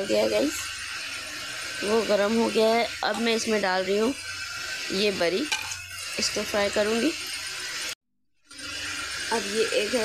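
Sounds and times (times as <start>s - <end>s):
oil sizzling in pot: 0.0s - 10.0s.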